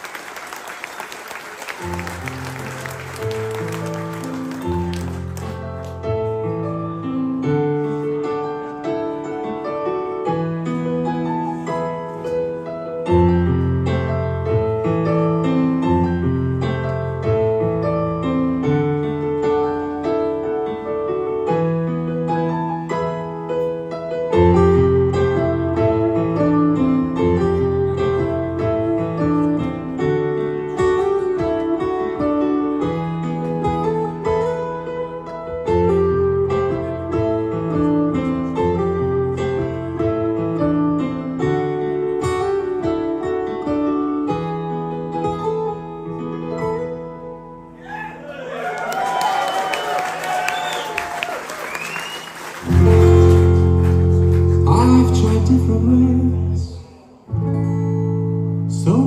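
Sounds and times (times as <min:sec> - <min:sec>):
piano-like keyboards: 0:00.0 - 0:59.0
rock band playing: 0:52.6 - 0:55.4.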